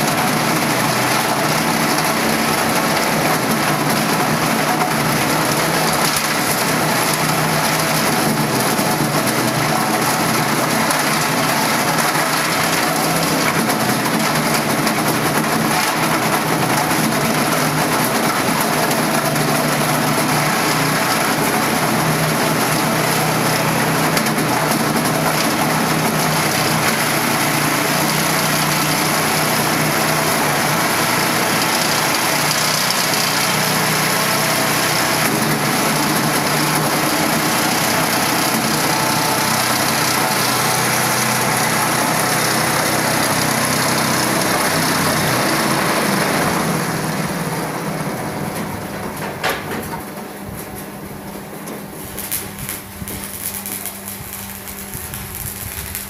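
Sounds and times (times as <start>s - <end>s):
waste shredder running: 0.0s - 56.0s.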